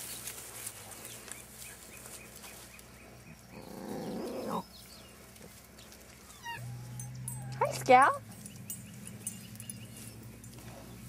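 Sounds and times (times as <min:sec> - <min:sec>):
puppy growling: 0:03.5 - 0:04.7, 0:06.3 - 0:07.9.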